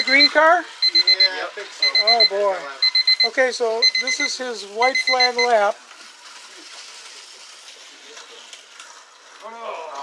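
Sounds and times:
person speaking: 0:03.2 - 0:05.8.

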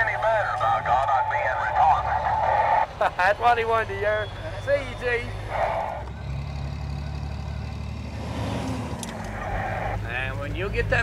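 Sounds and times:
truck engine running: 0:00.0 - 0:11.0.

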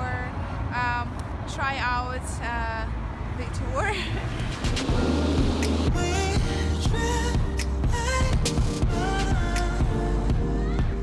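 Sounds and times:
woman speaking: 0:00.0 - 0:04.2
road traffic rumble: 0:00.0 - 0:08.2.

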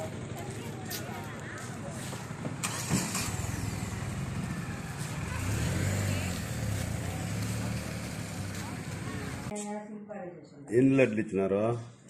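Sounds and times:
van engine pulling away: 0:01.9 - 0:09.5.

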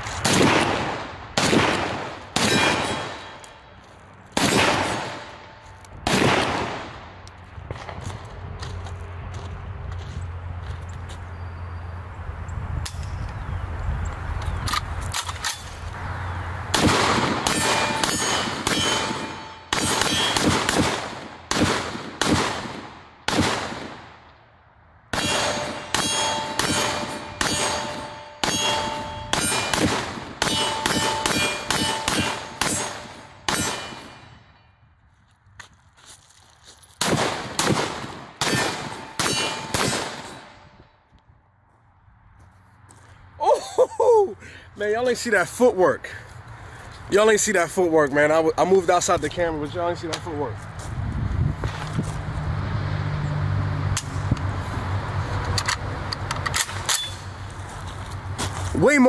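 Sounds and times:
pistol shots: 0:00.2 - 0:03.5, 0:04.4 - 0:07.1, 0:16.7 - 0:24.2, 0:25.1 - 0:34.3, 0:37.0 - 0:40.6
steel targets ringing: 0:17.5 - 0:20.4, 0:25.2 - 0:29.8, 0:30.4 - 0:34.8, 0:38.9 - 0:40.7.

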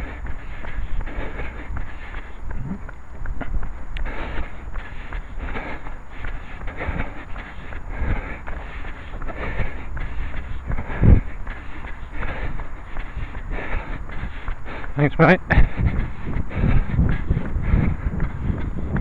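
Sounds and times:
low microphone rumble: 0:00.0 - 0:19.0
running footsteps: 0:00.0 - 0:19.0.

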